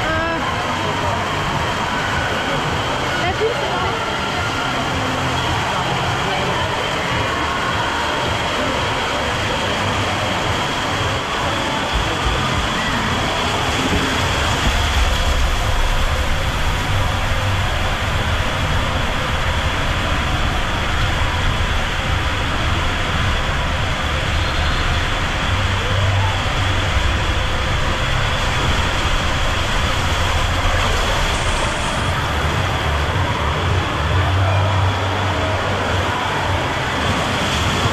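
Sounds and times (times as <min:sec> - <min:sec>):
rider rushing down waterslide tube: 0:00.0 - 0:37.9.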